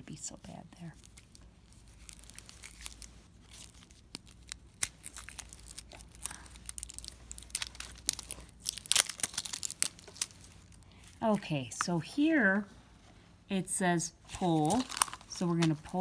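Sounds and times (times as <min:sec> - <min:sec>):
plastic shrink wrap crinkling: 0:00.5 - 0:11.4, 0:14.3 - 0:16.0
plastic wrap tearing: 0:01.0 - 0:10.8, 0:14.3 - 0:16.0.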